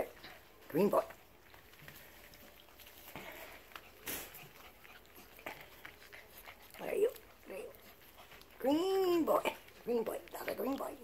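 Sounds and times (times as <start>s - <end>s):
puppy puffing: 2.2s - 8.6s.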